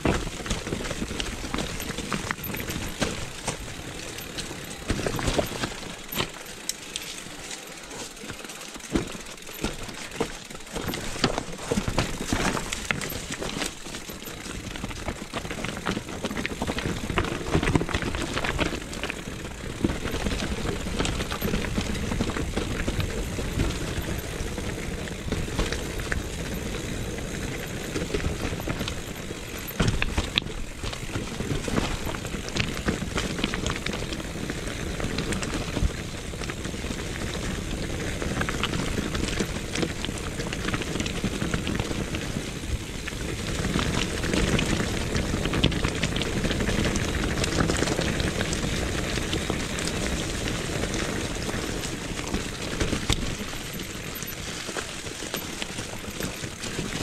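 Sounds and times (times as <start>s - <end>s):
bike clicks and rattles: 0.0s - 57.0s
bike tyre rumble and crackle: 0.0s - 57.0s.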